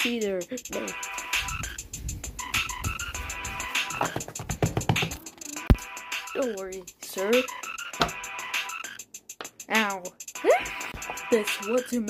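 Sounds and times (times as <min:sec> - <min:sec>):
quick ticking beat: 0:00.0 - 0:08.2.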